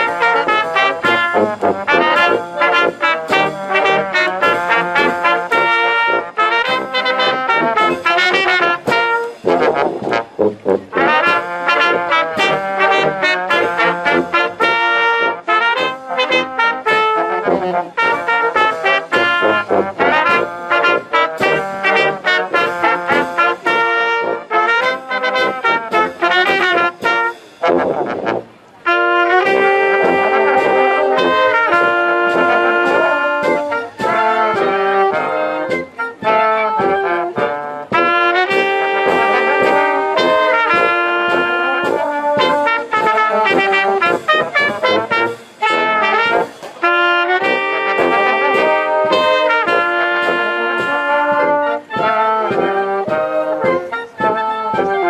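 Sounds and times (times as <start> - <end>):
wind band playing: 0.0 - 55.0.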